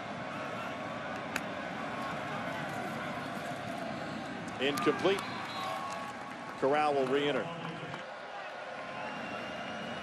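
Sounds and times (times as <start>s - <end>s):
stadium crowd roaring: 0.0s - 10.0s.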